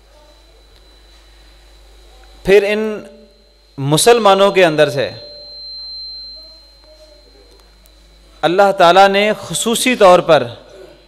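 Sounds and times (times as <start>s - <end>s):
faint high-pitched tone: 0.0s - 10.4s
man speaking into a microphone: 2.4s - 5.3s, 8.4s - 10.7s.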